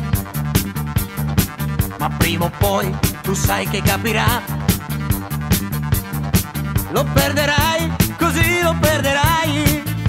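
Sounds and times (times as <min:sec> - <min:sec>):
pop drum beat: 0:00.0 - 0:10.0
repeating bass line: 0:00.0 - 0:10.0.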